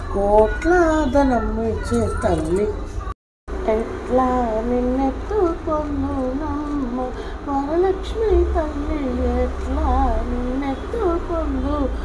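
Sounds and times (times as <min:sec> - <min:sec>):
low steady hum: 0:00.0 - 0:12.0
woman singing: 0:00.0 - 0:12.0.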